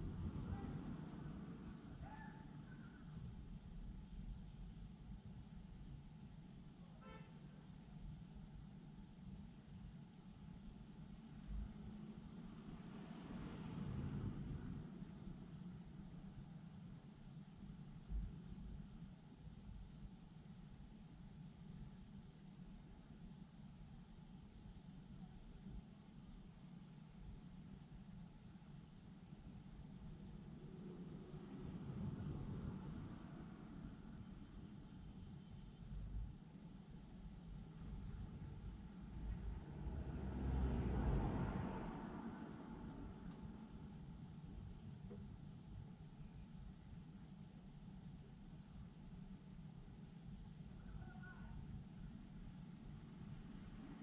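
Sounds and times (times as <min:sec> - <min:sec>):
distant city traffic rumble: 0:00.0 - 0:05.9, 0:07.3 - 0:20.0, 0:27.2 - 0:49.7, 0:50.3 - 0:54.0
vehicle passing: 0:12.5 - 0:15.3, 0:39.1 - 0:44.0.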